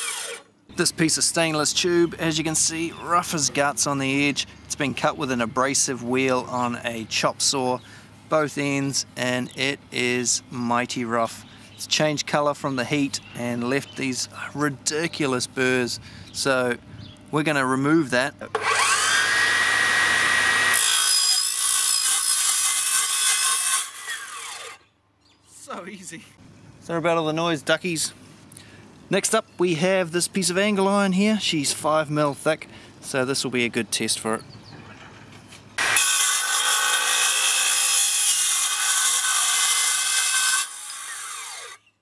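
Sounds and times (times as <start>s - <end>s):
circular saw cutting metal: 0.0s - 0.4s, 18.5s - 24.8s, 35.8s - 41.8s
saw blade whine spinning down: 18.5s - 21.0s.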